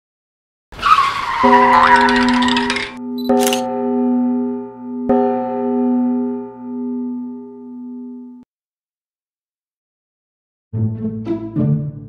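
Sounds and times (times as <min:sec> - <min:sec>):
held musical note: 0:01.4 - 0:08.4.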